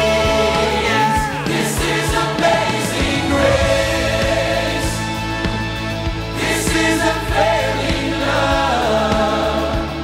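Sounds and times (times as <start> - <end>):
band playing held chords: 0.0 - 10.0
voices singing worship song: 0.0 - 10.0.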